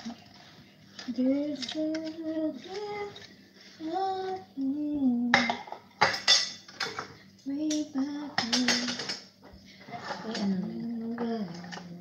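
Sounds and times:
woman singing slow tune: 0:01.0 - 0:05.6, 0:07.4 - 0:09.2, 0:10.1 - 0:12.0
utensils and dishes clattering: 0:05.3 - 0:12.0.

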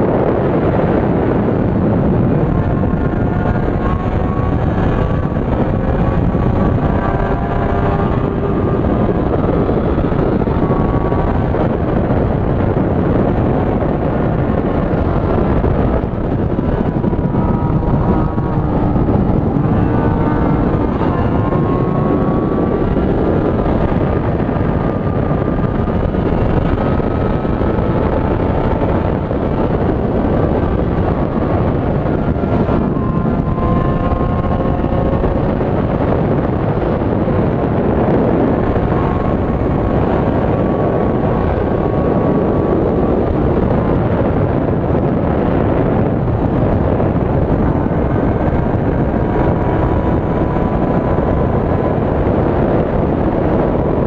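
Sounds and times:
motorcycle engine running: 0:00.0 - 0:54.0
wind noise on microphone: 0:00.0 - 0:54.0.

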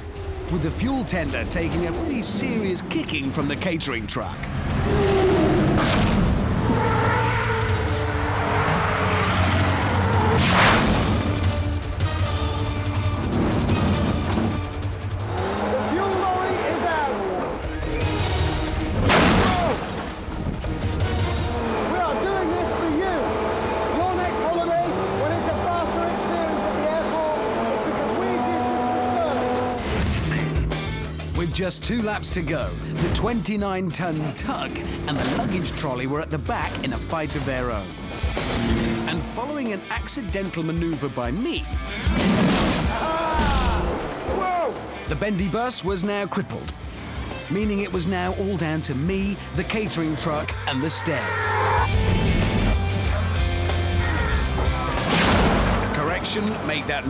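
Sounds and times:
heavy trucks and buses racing: 0:00.0 - 0:57.0
loud vehicle crashes: 0:04.5 - 0:11.7, 0:13.1 - 0:14.9, 0:15.8 - 0:24.6, 0:42.0 - 0:45.0, 0:54.4 - 0:56.9.

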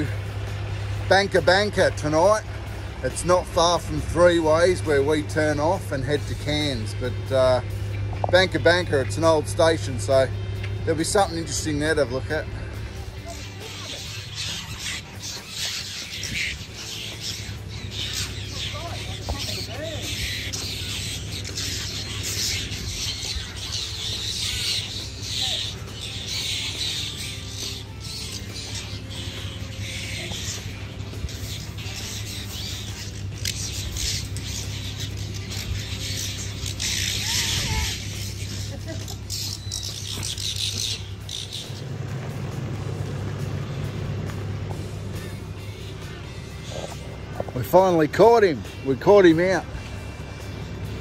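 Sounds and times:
background music: 0:00.0 - 0:51.0.

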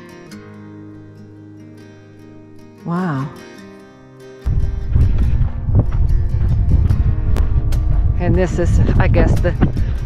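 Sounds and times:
soft background music: 0:00.2 - 0:10.0
wind buffeting microphone: 0:04.5 - 0:10.0.

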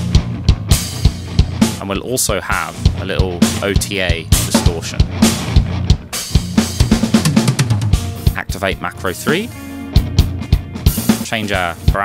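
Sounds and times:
rock drum groove: 0:00.0 - 0:12.0.

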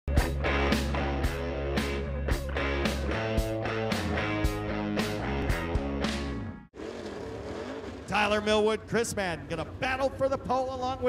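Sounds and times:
rock music with steady beat: 0:00.1 - 0:06.6
race car engines circling: 0:06.8 - 0:11.0.

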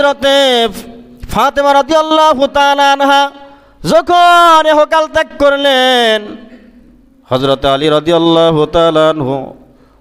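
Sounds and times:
man chanting a sermon: 0:00.0 - 0:09.8.

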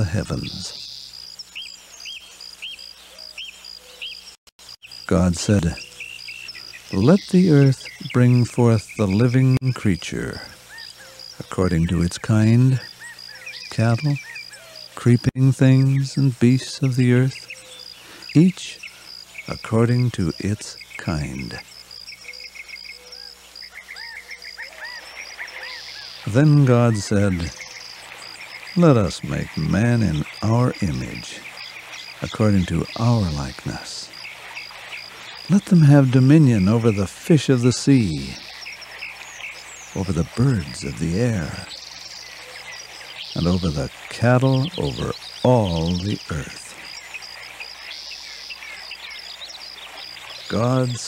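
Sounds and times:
insects chirping in chorus: 0:00.0 - 0:51.0.

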